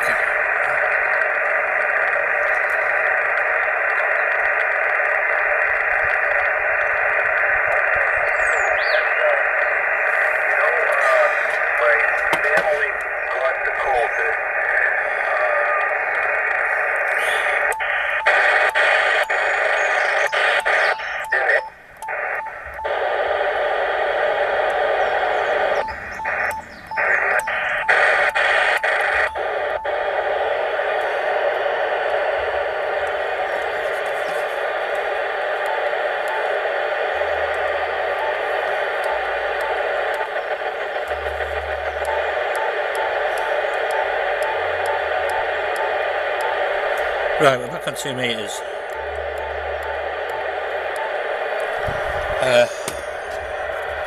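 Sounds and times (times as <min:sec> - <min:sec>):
radio static hiss: 0:00.0 - 0:54.0
radio tuning clicks: 0:00.0 - 0:54.0
radio voice signal: 0:00.0 - 0:54.0.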